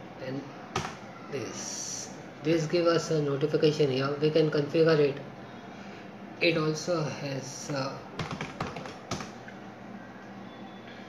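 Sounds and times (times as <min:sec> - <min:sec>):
computer keyboard key clicks: 0:08.2 - 0:09.3.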